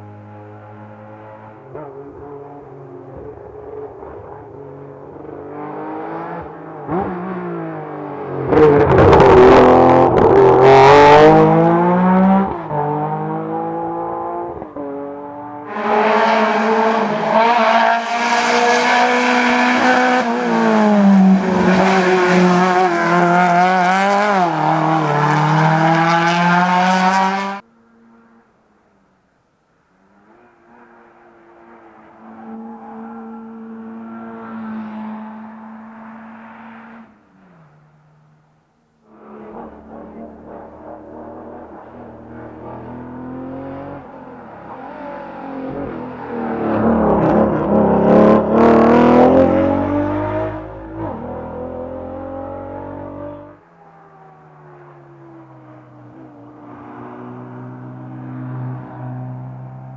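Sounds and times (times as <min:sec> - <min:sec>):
rally car engines revving: 0:00.0 - 0:28.3, 0:39.1 - 0:53.6.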